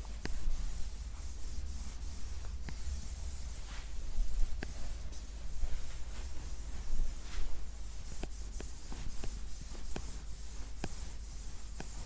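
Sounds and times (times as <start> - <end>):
stylus scratching on whiteboard: 0.0 - 12.0.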